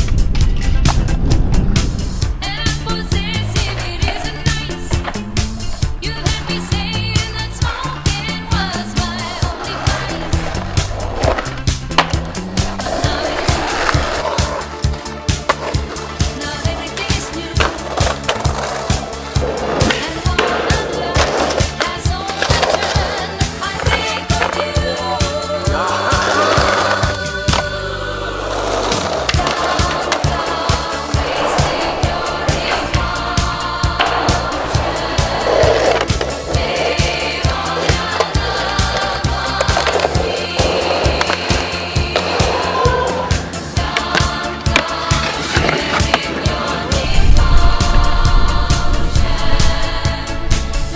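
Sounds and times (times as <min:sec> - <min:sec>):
skateboard wheels rolling on concrete: 0:00.0 - 0:50.9
skateboard trucks grinding on ledge: 0:00.4 - 0:47.8.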